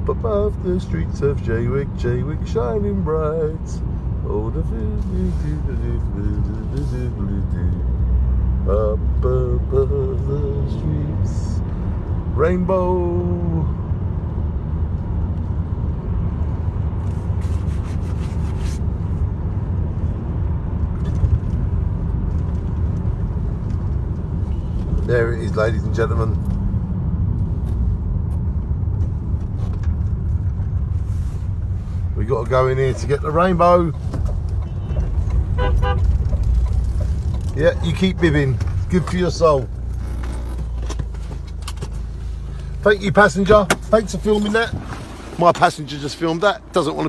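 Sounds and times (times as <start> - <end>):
car engine and tyres rumbling: 0.0 - 47.0
car horn toots: 34.6 - 36.4.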